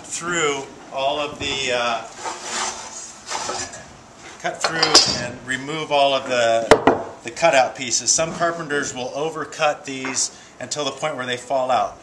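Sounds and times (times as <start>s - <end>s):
lumber and handsaw handled: 2.1s - 3.8s.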